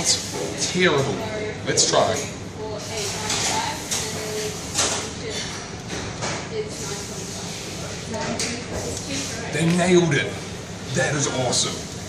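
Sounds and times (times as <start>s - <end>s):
restaurant clatter: 0.0s - 11.8s.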